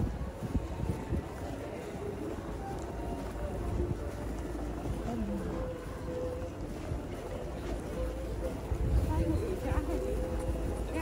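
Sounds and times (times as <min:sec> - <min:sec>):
low steady street rumble: 0:00.0 - 0:11.0.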